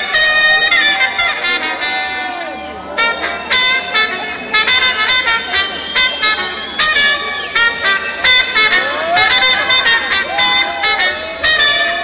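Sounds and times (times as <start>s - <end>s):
latin band playing: 0.0s - 12.0s
trumpet blasts: 0.0s - 12.0s.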